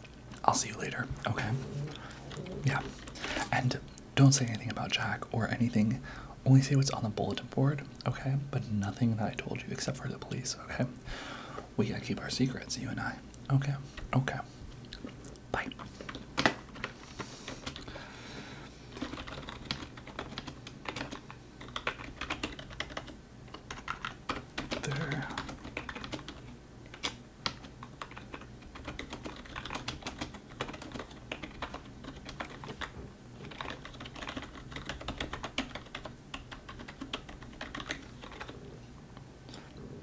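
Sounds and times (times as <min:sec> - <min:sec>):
typing on keyboard: 0:19.0 - 0:38.6.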